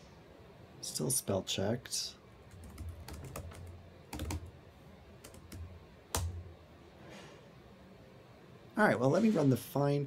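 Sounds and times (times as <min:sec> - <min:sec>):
computer keyboard typing: 0:02.4 - 0:04.5, 0:05.2 - 0:06.4.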